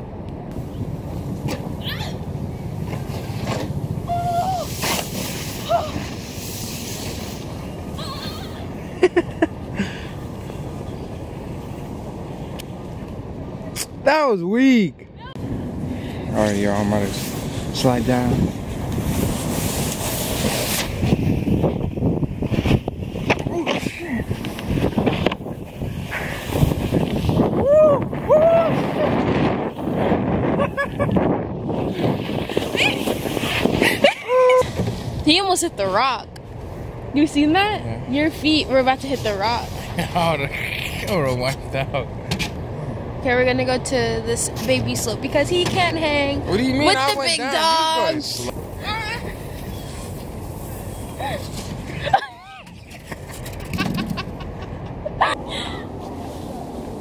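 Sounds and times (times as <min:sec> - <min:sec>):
steady low rumble: 0:00.0 - 0:57.0
sled scraping on snow: 0:04.6 - 0:08.7, 0:16.4 - 0:21.8, 0:22.4 - 0:27.6, 0:28.7 - 0:35.6, 0:46.5 - 0:54.3
wind buffeting microphone: 0:15.4 - 0:40.4.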